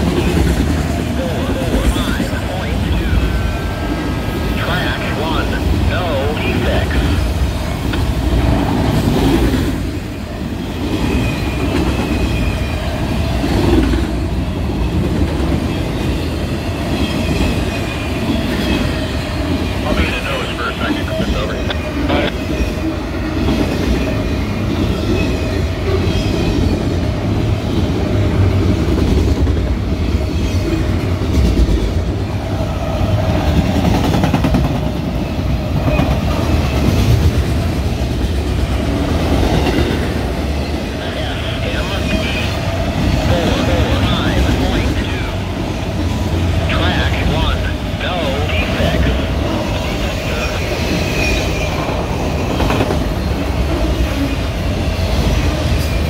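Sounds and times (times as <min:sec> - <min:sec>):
freight train rolling past: 0:00.0 - 0:56.0.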